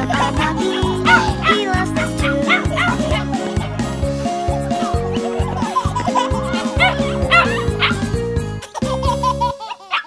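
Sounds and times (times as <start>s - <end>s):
instrumental children's music: 0.0s - 10.0s
cartoon puppy yipping: 1.0s - 3.3s, 6.3s - 8.0s, 9.7s - 10.0s.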